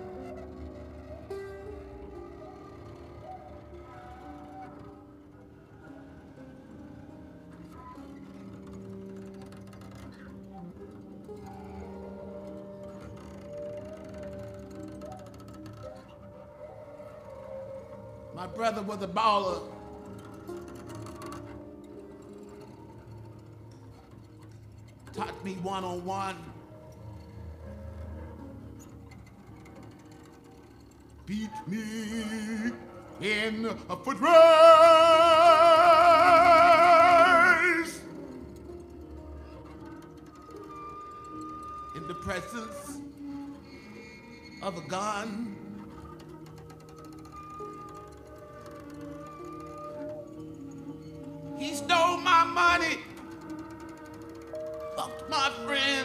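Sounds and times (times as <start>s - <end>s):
grand piano notes and chords: 0.0s - 56.0s.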